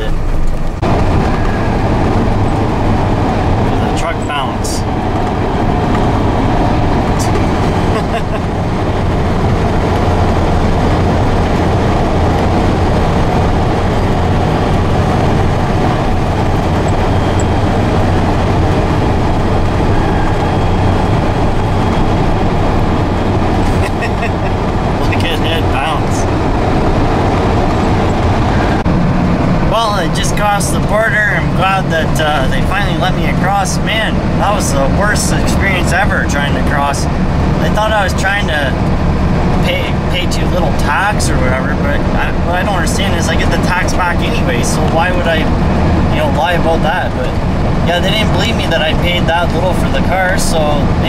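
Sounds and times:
truck engine and tyre drone: 0.0 - 51.0.

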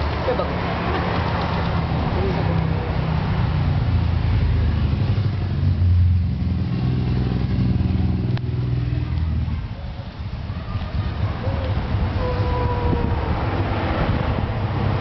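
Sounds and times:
vehicle engine running: 0.0 - 12.2.

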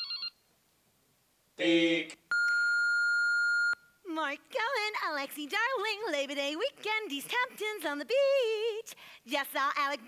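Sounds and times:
answering machine beep: 2.3 - 3.8.

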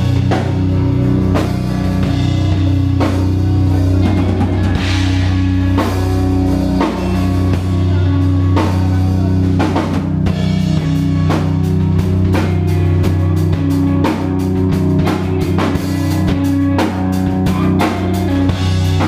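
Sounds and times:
drum kit hits: 0.0 - 19.0
electric guitars and bass chords: 0.0 - 19.0.

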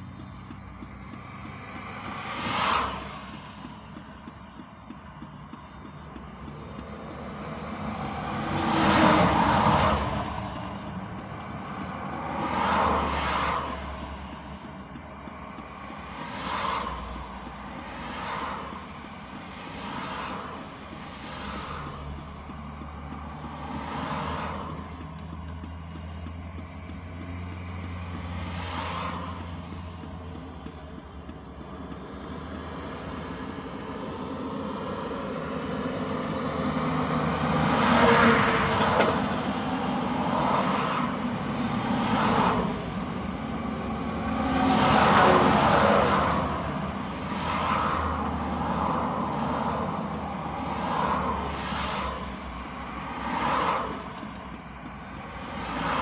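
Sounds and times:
vehicles passing on highway: 0.0 - 56.0.

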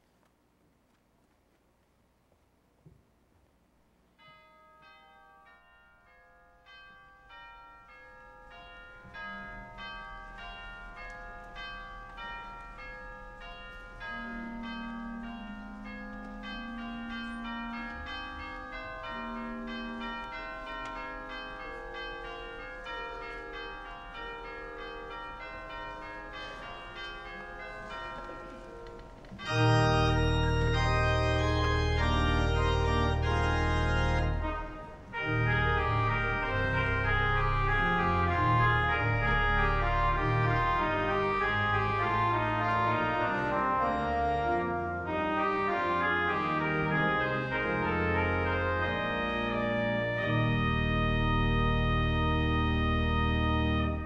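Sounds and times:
bells ringing overlapping: 4.2 - 50.3.

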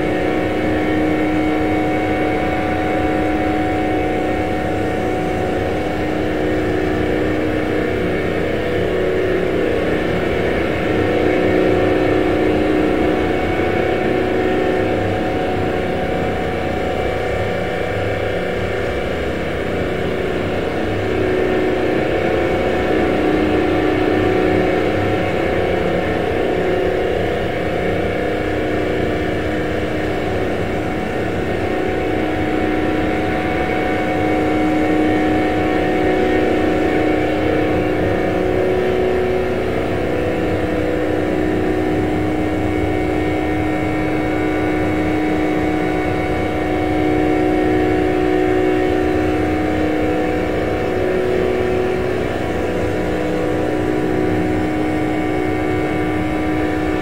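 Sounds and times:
drone ambient music: 0.0 - 57.0.

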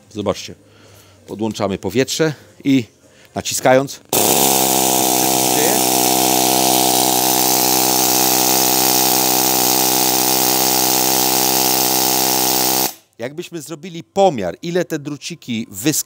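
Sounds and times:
pneumatic needle scaler buzzing: 4.1 - 13.1.

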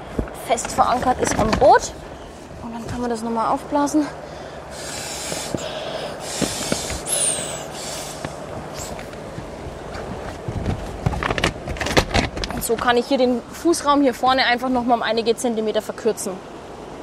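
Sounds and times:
breath blown through a tube: 4.7 - 9.0.

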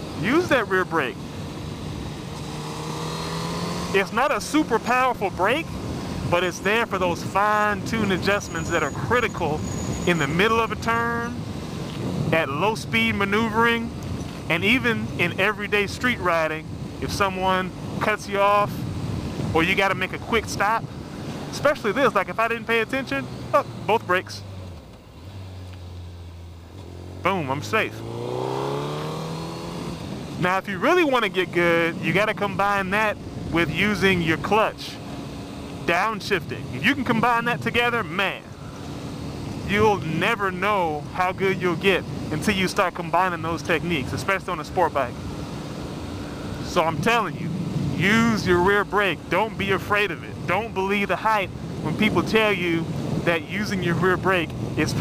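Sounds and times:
motorcycle engine cruising: 0.0 - 55.0
wind and road noise: 0.0 - 55.0.

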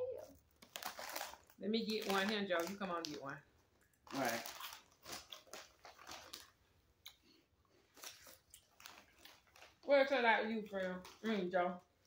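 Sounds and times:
puffed snacks being chewed: 0.2 - 12.0.

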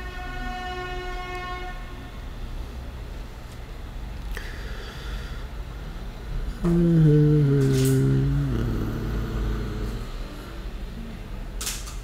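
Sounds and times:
man humming: 6.5 - 10.4.

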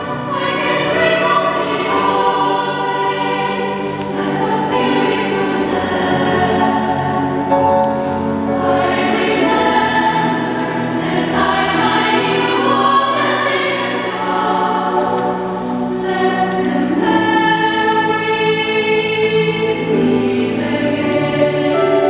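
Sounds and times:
choir singing sustained chords: 0.0 - 22.0.

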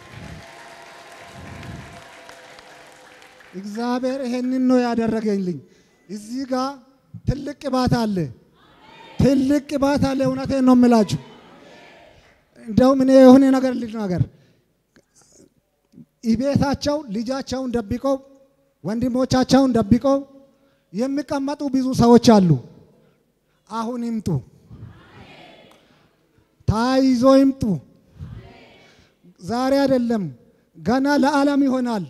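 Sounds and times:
low crowd noise: 0.0 - 4.5, 8.4 - 12.7, 24.6 - 26.5, 28.1 - 29.2
man's amplified speech: 3.5 - 8.4, 9.2 - 11.3, 12.6 - 14.3, 26.7 - 27.9, 29.4 - 32.0.

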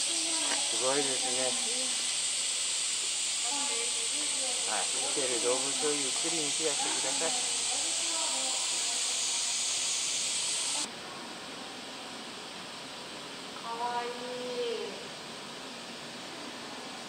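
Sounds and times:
faint voices: 0.0 - 2.1, 3.4 - 9.8
high outdoor hiss: 0.0 - 17.0.

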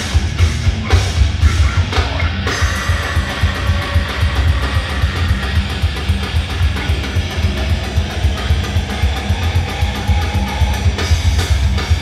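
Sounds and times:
fast drumming: 0.0 - 12.0
heavy metal band playing live: 0.0 - 12.0.

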